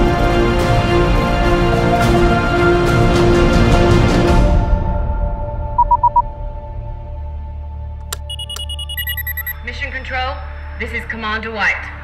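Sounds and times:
higher electronic beeps: 5.8s - 6.2s, 8.2s - 9.6s
short electronic beeps: 5.8s - 6.2s, 8.2s - 9.6s
sharp clicks: 8.0s - 9.6s.

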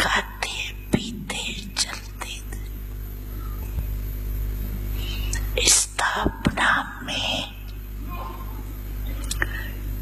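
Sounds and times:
woman speaking into a microphone: 0.0s - 2.6s, 5.4s - 7.6s
steady low hum: 0.0s - 10.0s.

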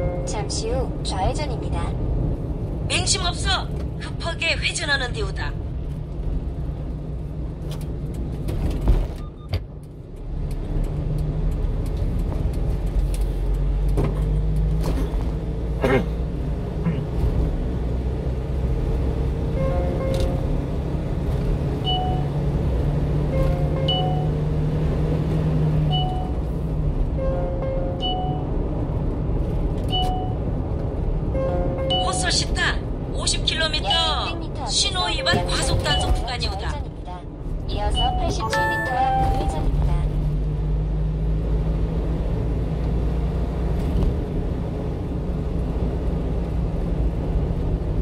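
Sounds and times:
truck engine and road rumble: 0.0s - 48.0s
quiet music: 38.4s - 39.8s.

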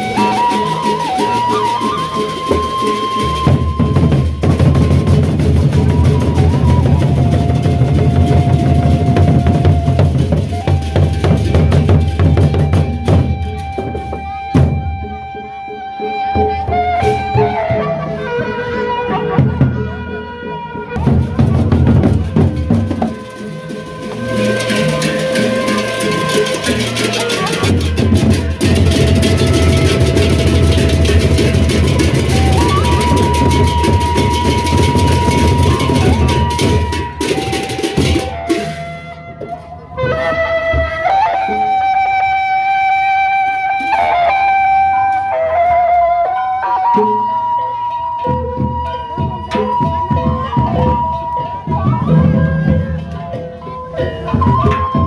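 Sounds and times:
barrel drums beating fast: 0.0s - 14.8s, 21.0s - 39.1s
held high tone: 21.8s - 42.4s, 43.5s - 55.0s
hand cymbals clashing: 22.6s - 38.8s.

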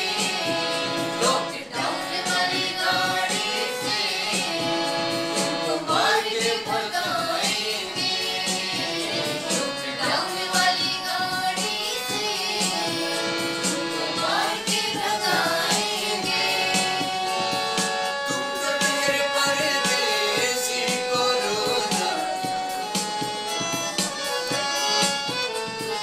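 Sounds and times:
electronic keyboard chords: 0.0s - 26.0s
harmonium chords: 0.0s - 26.0s
steady beat: 0.0s - 26.0s.

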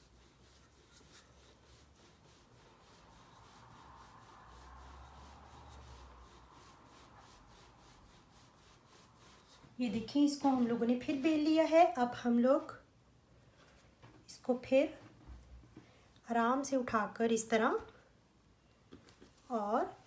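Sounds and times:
rolling pin rubbing on dough: 0.0s - 11.6s.

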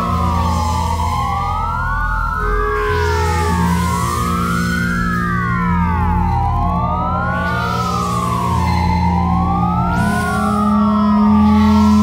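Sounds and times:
low synthesizer drone: 0.0s - 12.0s
synthesizer siren-like tones: 0.0s - 12.0s.

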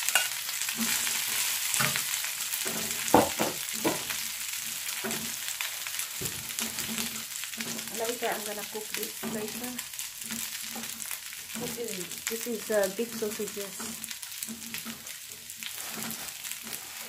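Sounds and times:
metal utensils scraping and knocking: 0.0s - 1.0s, 15.8s - 17.0s
rice sizzling in a pan: 0.0s - 17.0s.

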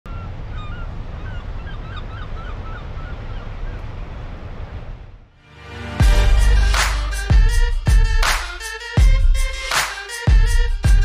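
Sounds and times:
gulls calling: 0.1s - 3.9s
music: 5.4s - 11.0s.

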